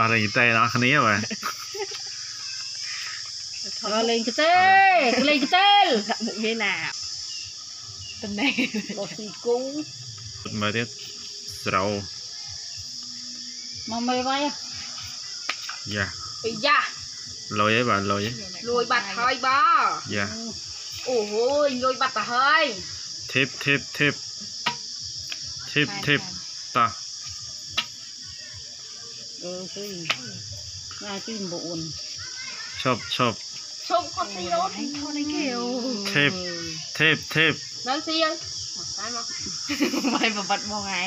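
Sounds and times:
people calling: 0:00.0 - 0:07.0, 0:25.4 - 0:27.0, 0:27.8 - 0:41.0
high-pitched insect chirring: 0:00.0 - 0:41.0.

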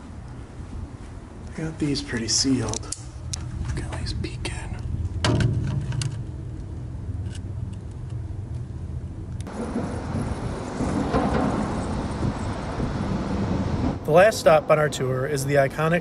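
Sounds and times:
low steady rumble: 0:00.0 - 0:15.9
road traffic noise: 0:00.0 - 0:16.0
vehicle passing: 0:08.2 - 0:16.0.

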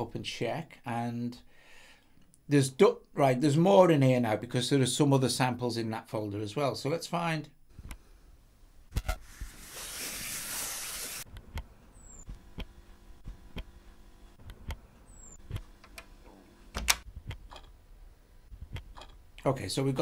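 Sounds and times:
hiss-like rush from speaker: 0:09.3 - 0:11.3
fingertip tapping touchscreen: 0:18.5 - 0:19.2.

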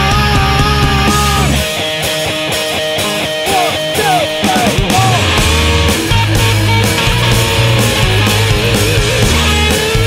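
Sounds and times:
full rock band with bass: 0:00.0 - 0:10.0
rock guitar line: 0:00.0 - 0:10.0.

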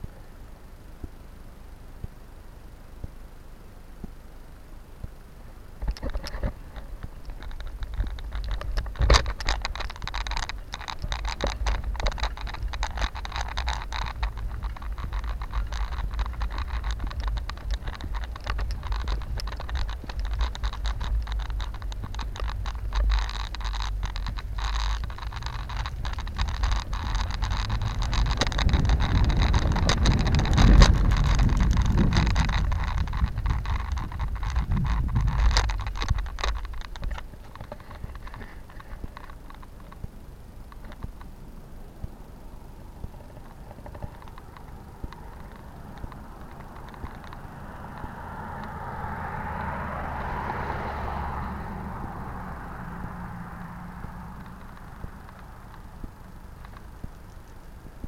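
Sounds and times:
wind and road rumble: 0:00.0 - 0:58.0
bike clicks and rattles: 0:05.0 - 0:58.0.

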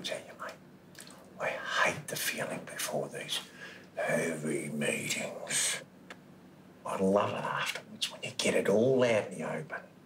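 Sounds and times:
man speaking: 0:01.4 - 0:05.9, 0:06.8 - 0:09.9.

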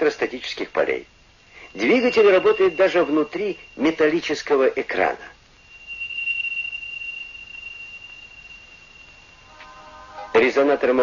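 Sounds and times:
high electronic tone: 0:01.5 - 0:11.0
soft electronic chord: 0:09.4 - 0:11.0.

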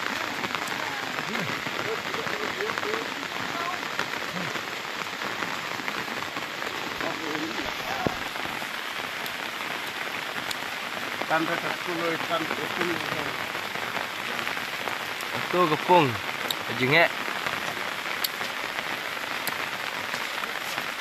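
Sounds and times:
faint voices: 0:00.0 - 0:05.2, 0:06.4 - 0:08.6
rain falling on water: 0:00.0 - 0:21.0.

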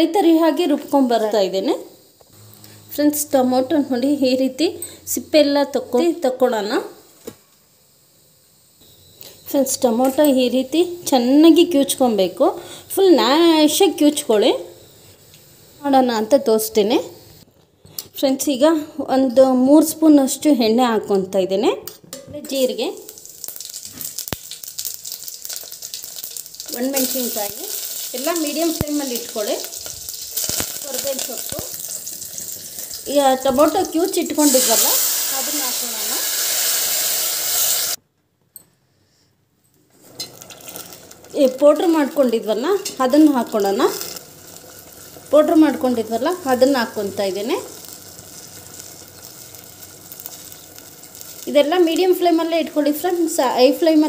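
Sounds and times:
seeds sizzling in hot oil: 0:00.0 - 0:17.5, 0:22.5 - 0:38.0, 0:39.9 - 0:54.0.

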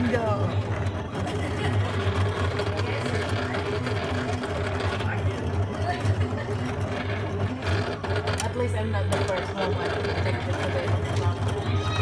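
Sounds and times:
cutting machine motors humming: 0:00.0 - 0:12.0.

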